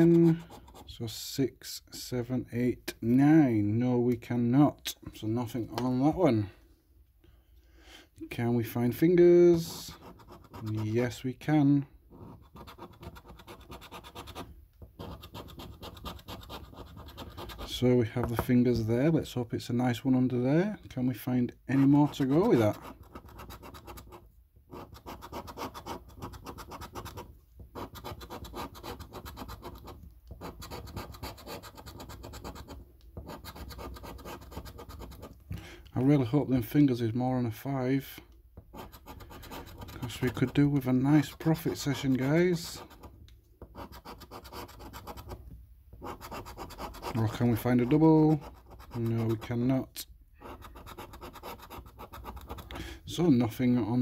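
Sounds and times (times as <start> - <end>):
coin scratching card: 12.2 - 14.4, 15.0 - 17.8, 21.8 - 35.3, 38.8 - 43.0, 43.8 - 45.4, 46.0 - 49.5, 50.4 - 52.7.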